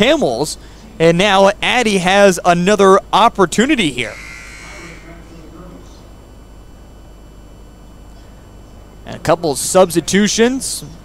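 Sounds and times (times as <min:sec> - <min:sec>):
commentator speaking: 0:00.0 - 0:06.2, 0:09.0 - 0:11.0
steady electrical buzz: 0:00.0 - 0:11.0
indistinct crowd voices: 0:03.9 - 0:07.0.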